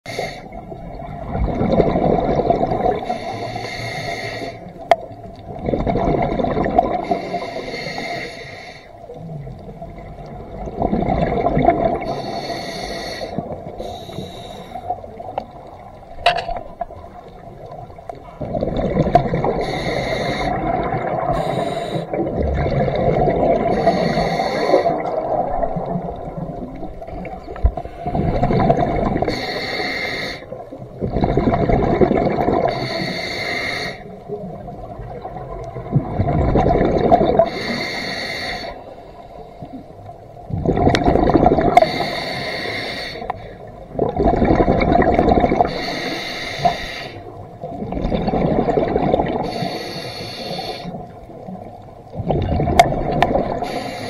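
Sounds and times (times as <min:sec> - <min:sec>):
regulator hiss on inhale: 0:00.1 - 0:00.6, 0:03.0 - 0:04.8, 0:07.0 - 0:09.1, 0:12.0 - 0:15.2, 0:19.6 - 0:20.7, 0:21.3 - 0:22.2, 0:23.7 - 0:25.1, 0:29.2 - 0:30.6, 0:32.7 - 0:34.2, 0:37.4 - 0:40.0, 0:41.7 - 0:43.6, 0:45.6 - 0:47.4, 0:49.4 - 0:51.1, 0:53.6 - 0:54.0
bubbling on exhale: 0:00.5 - 0:03.4, 0:05.5 - 0:07.4, 0:10.5 - 0:15.3, 0:18.2 - 0:29.5, 0:30.4 - 0:33.1, 0:34.5 - 0:37.9, 0:40.5 - 0:51.2, 0:52.1 - 0:54.0.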